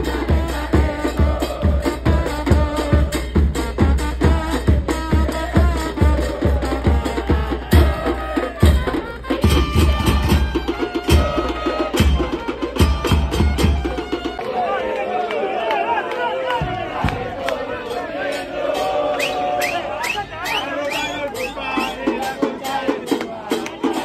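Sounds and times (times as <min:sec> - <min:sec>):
bass drums pounding: 0:00.0 - 0:14.2, 0:16.6 - 0:17.6
crowd singing: 0:00.0 - 0:24.0.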